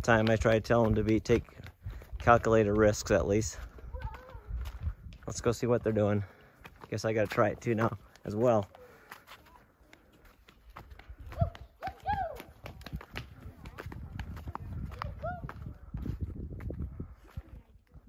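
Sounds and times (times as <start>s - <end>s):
footsteps on sandstone: 0.0s - 17.6s.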